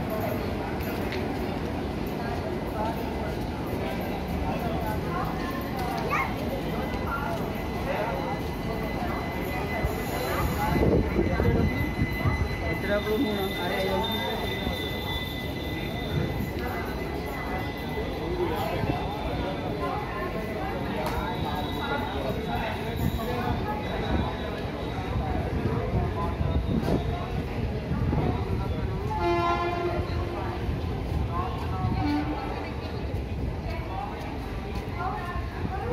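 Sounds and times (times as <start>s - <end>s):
train wheels rolling on rails: 0.0s - 35.9s
voices: 0.0s - 35.9s
train horn: 29.1s - 30.4s, 31.9s - 32.6s.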